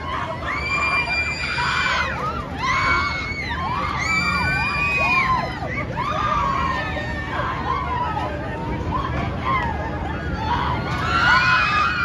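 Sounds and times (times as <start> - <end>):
people yelling on a ride: 0.0 - 12.0.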